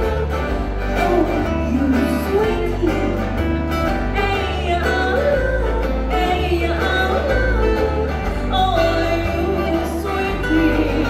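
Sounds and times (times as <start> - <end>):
acoustic guitar: 0.0 - 11.0
person singing: 0.0 - 11.0
sustained bass notes: 0.0 - 11.0
ukulele: 0.0 - 11.0.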